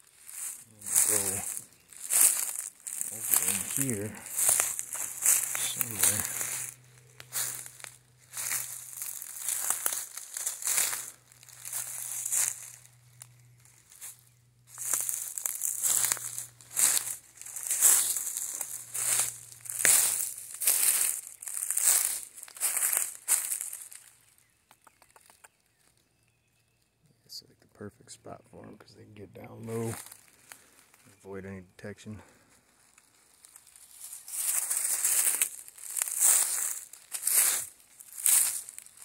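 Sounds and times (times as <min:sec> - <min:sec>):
footsteps crunching dry leaves: 0:00.0 - 0:24.5, 0:29.6 - 0:31.2, 0:32.2 - 0:39.0.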